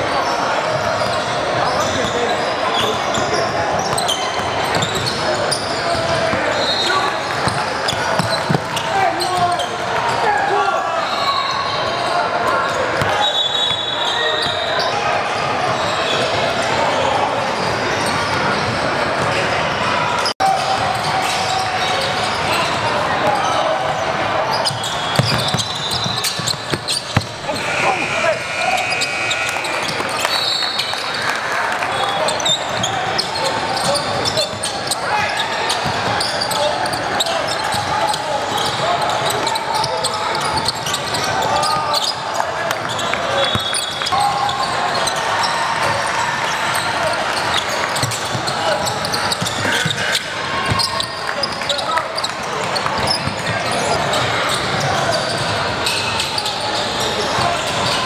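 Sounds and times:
ball bouncing on hardwood court: 0:07.4 - 0:08.8, 0:25.2 - 0:27.4
overlapping echoing voices: 0:14.0 - 0:58.0.

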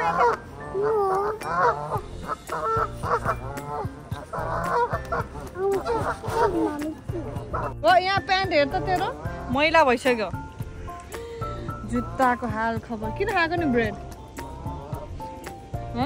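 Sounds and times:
geese honking: 0:00.0 - 0:12.5, 0:13.2 - 0:15.6.

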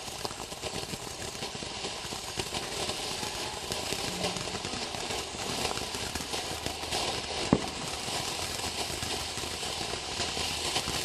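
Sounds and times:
firework hissing and crackling: 0:00.0 - 0:11.0.

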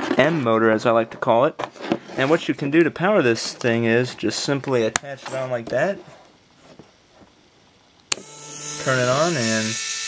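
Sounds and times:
small motor whirring: 0:08.1 - 0:10.0.

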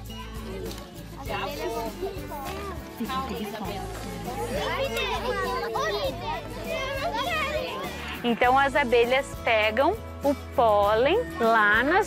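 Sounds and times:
children talking and exclaiming: 0:00.0 - 0:09.4, 0:10.0 - 0:12.0.

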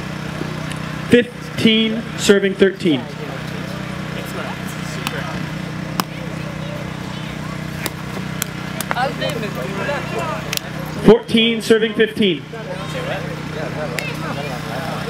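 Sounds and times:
faint background talk: 0:03.1 - 0:11.0, 0:12.4 - 0:15.0.

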